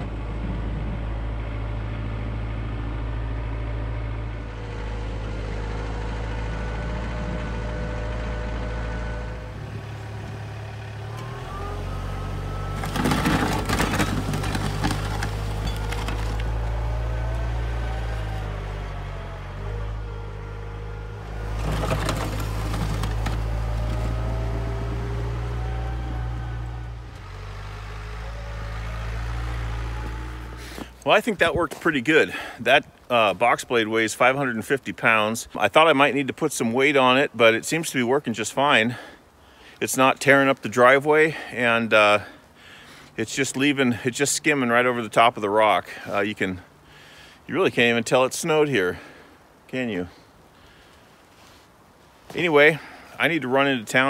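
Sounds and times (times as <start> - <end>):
tractor diesel engine under load: 0.0 - 54.0
blade scraping snow and gravel: 9.5 - 17.1, 21.1 - 26.6, 29.3 - 34.8.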